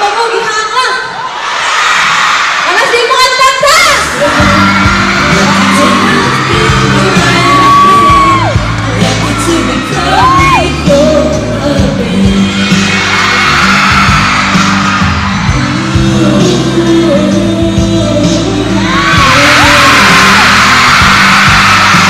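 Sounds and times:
fans screaming and whooping: 1.2 - 22.0
pop backing music: 3.8 - 22.0
man and woman singing duet: 4.0 - 13.4, 15.5 - 20.8.

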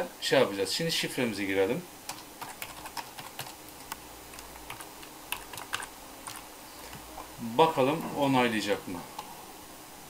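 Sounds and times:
keyboard keys clicking: 2.1 - 4.0, 4.6 - 7.0.

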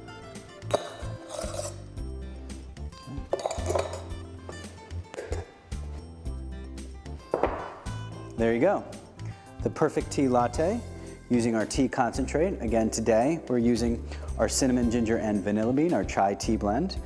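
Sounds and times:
background music: 0.0 - 17.0
metal spoon clinking on jug: 0.7 - 1.8, 3.3 - 4.2.

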